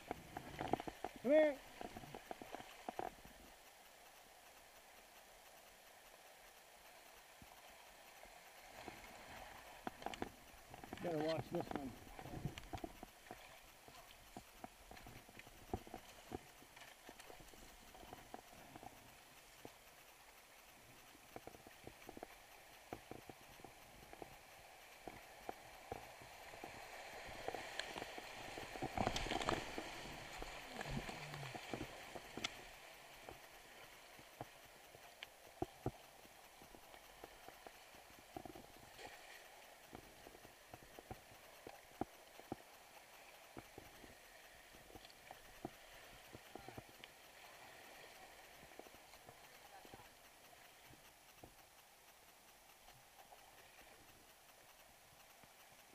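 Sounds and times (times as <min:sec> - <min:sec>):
splashing and rushing water: 0:07.6 - 0:50.8.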